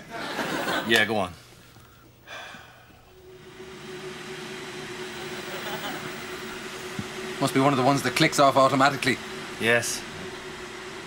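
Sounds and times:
electric kettle heating water: 1.8 - 11.0
steady tone: 2.2 - 11.0.

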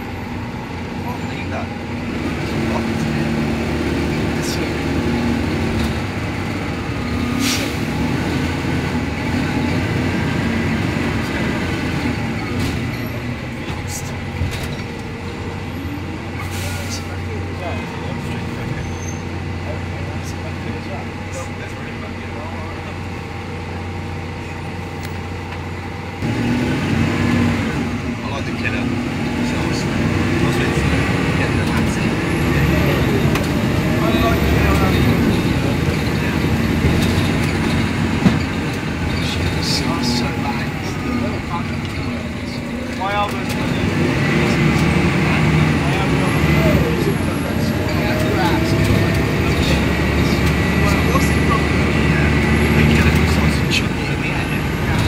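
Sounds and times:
bus engine changing gear: 0.0 - 55.0.

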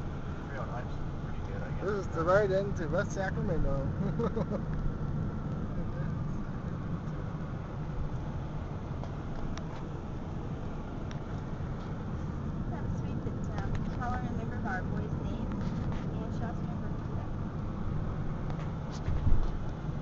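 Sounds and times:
car road and engine rumble: 0.0 - 20.0.

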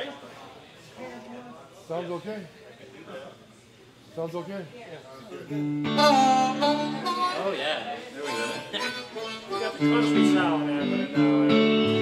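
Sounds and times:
guitar: 5.4 - 12.0
harmonica playing: 5.6 - 12.0.

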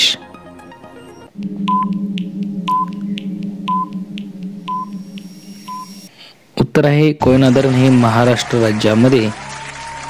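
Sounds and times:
low electronic hum: 0.8 - 6.2
short beeps: 1.4 - 6.1.

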